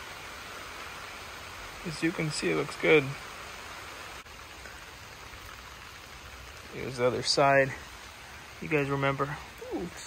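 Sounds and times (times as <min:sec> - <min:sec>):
rain falling steadily: 0:00.0 - 0:10.0.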